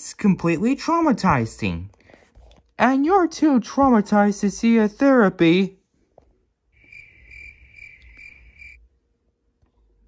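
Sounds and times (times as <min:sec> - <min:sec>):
cricket chirping: 0:06.8 - 0:08.8.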